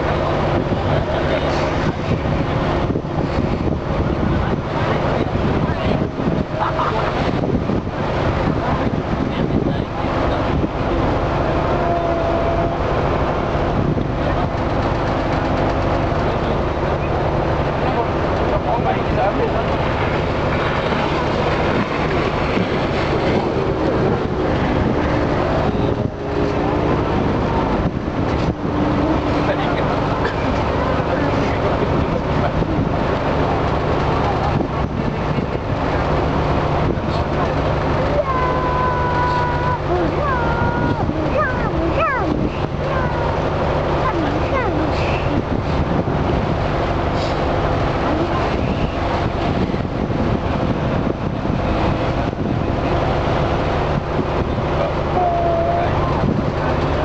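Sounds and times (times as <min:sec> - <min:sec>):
ferry engine humming: 0:00.0 - 0:57.0
wind and water rushing: 0:00.0 - 0:57.0.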